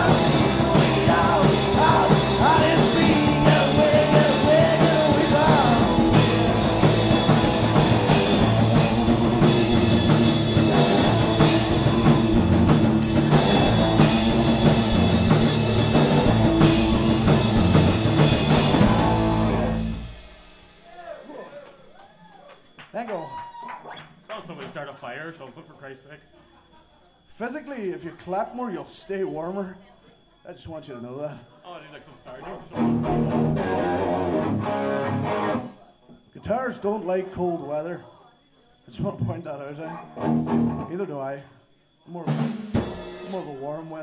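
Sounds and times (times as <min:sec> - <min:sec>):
man singing: 0:00.0 - 0:06.8
punk rock band playing live: 0:00.0 - 0:20.6, 0:32.7 - 0:35.6, 0:40.1 - 0:40.9.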